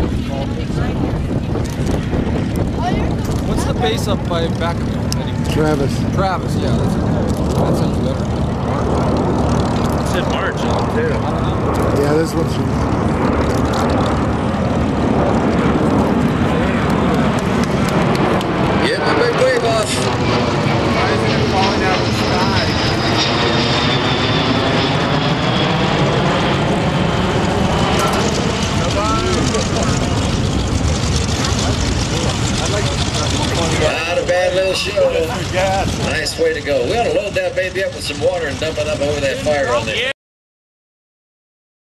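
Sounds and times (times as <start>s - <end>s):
jet plane passing overhead: 0.0s - 40.1s.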